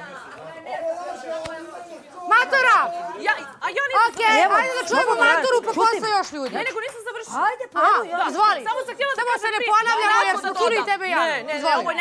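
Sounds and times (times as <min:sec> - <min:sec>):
background chatter: 0:00.0 - 0:12.0.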